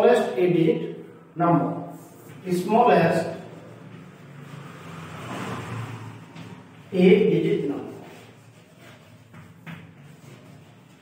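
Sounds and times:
chalk writing on a chalkboard: 1.9 - 5.3, 6.2 - 11.0.

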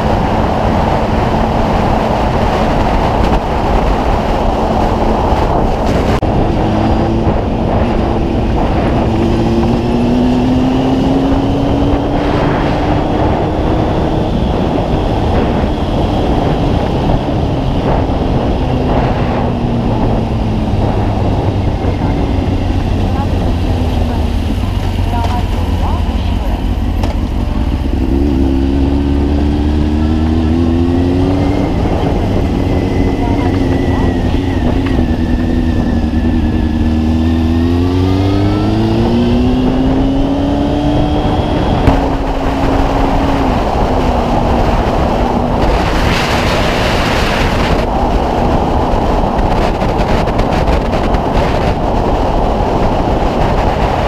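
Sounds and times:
motorcycle engine accelerating: 0.0 - 54.0
wind rushing over microphone: 0.0 - 54.0.

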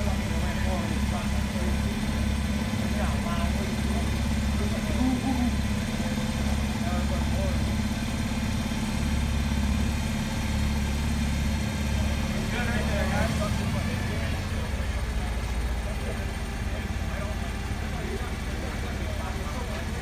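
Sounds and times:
forklift engine running: 0.0 - 20.0.

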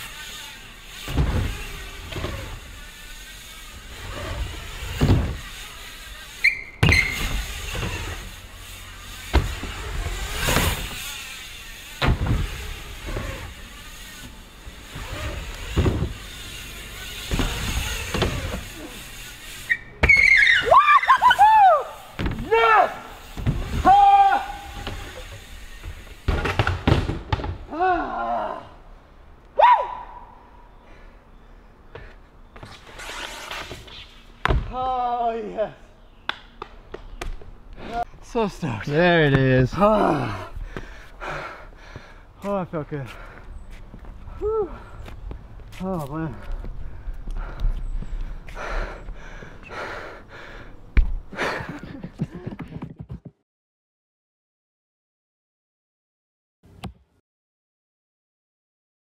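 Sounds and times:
short high squeals: 0.0 - 26.2, 32.6 - 34.4
bike tyres rolling on plywood: 0.0 - 28.6
thuds of bike landings: 0.1 - 20.7, 22.0 - 27.9, 31.9 - 34.9, 50.9 - 51.8.

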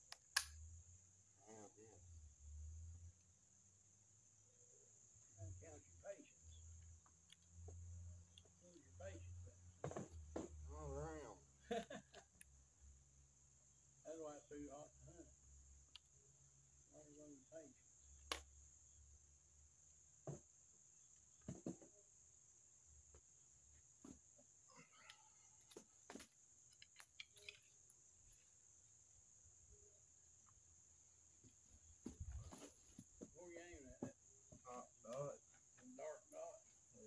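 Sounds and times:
crossbow clicks and knocks: 26.2 - 28.0.

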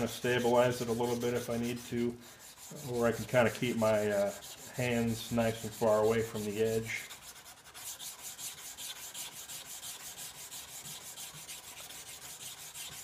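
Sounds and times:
sandpaper rubbing on steel blade: 0.0 - 13.0.

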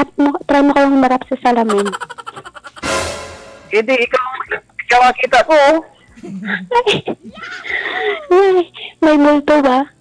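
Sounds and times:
person laughing: 1.7 - 2.9.

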